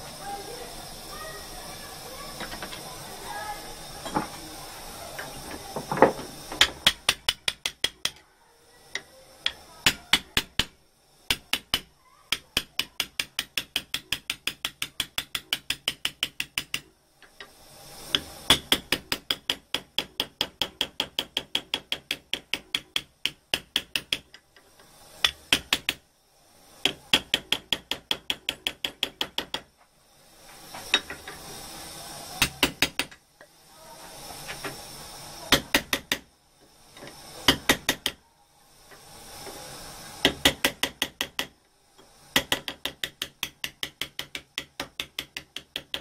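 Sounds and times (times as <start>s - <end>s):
small hammer tapping sheet metal: 6.0s - 8.2s, 9.0s - 24.4s, 25.2s - 26.0s, 26.8s - 29.7s, 32.4s - 33.5s, 35.5s - 36.3s, 37.4s - 38.2s, 40.2s - 46.0s.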